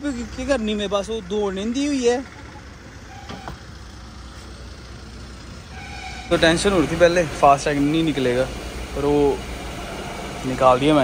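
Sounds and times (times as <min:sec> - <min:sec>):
car engine idling: 0:00.0 - 0:11.0
faint horn-like tone: 0:05.7 - 0:06.7.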